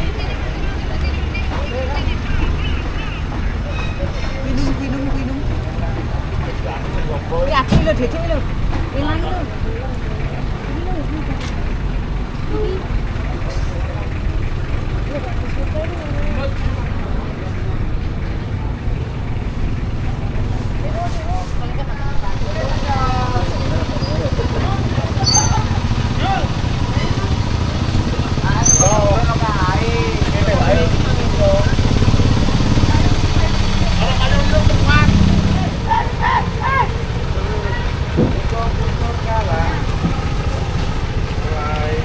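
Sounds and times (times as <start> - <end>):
people talking: 0.0 - 11.6, 12.4 - 19.2, 19.9 - 42.0
vehicle engine rumble: 0.0 - 42.0.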